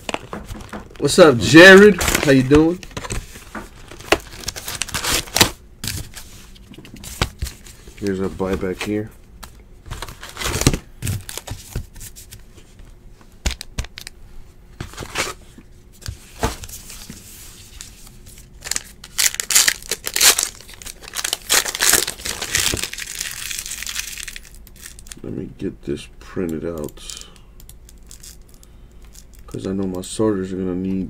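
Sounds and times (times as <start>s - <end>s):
card pack wrappers crinkling and tearing: 0.0s - 9.1s, 9.9s - 12.4s, 17.7s - 25.3s, 26.6s - 30.1s.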